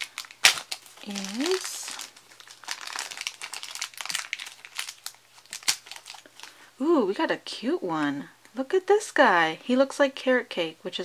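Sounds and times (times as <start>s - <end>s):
plastic wrapper crackling: 0.0s - 6.6s.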